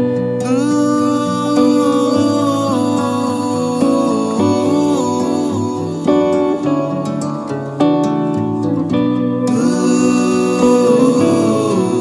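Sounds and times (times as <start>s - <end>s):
melody with sliding held notes: 0.0s - 12.0s.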